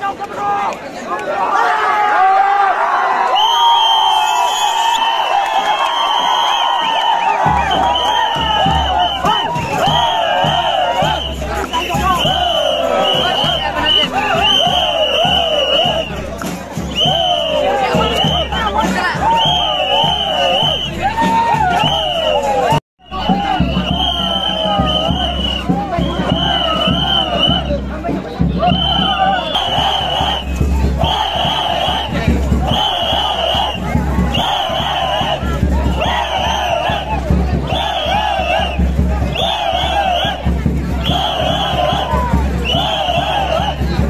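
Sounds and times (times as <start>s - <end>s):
crowd of men shouting and cheering: 0.0s - 44.0s.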